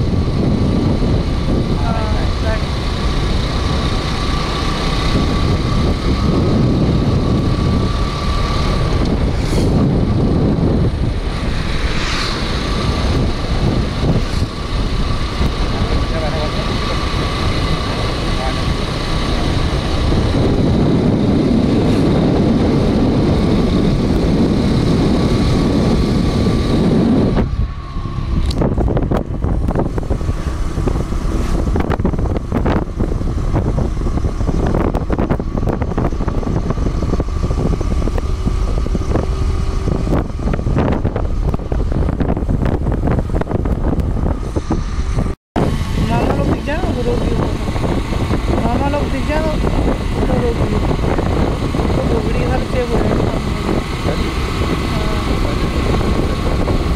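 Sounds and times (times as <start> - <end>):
motorcycle engine running: 0.0 - 56.9
wind rushing over microphone: 0.0 - 56.9.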